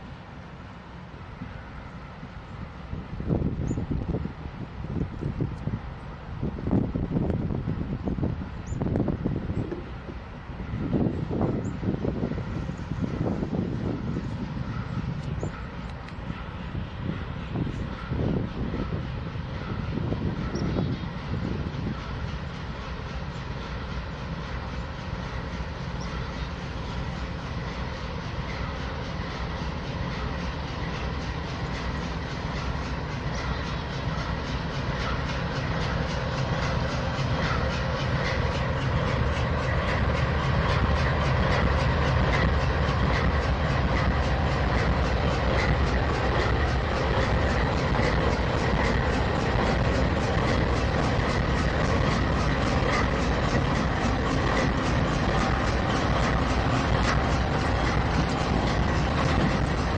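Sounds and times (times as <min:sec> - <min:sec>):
diesel locomotive engine: 0:00.0 - 0:59.9
train wheels rolling on rails: 0:00.0 - 0:59.9
wheels clicking over rails: 0:28.4 - 0:59.9.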